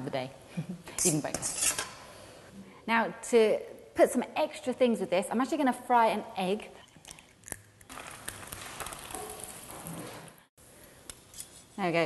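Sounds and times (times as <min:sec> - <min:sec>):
egg sizzling in hot oil: 0:07.8 - 0:09.9.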